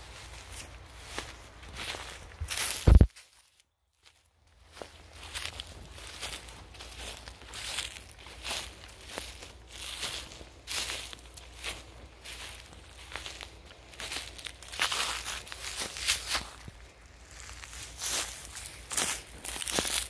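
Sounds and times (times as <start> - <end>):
footsteps through grass and leaves: 0.0 - 20.0.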